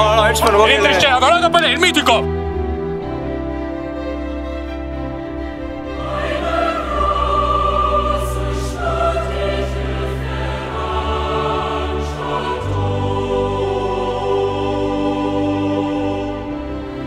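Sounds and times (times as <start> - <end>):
orchestral strings and bass: 0.0 - 17.0
choir singing held notes: 5.3 - 17.0.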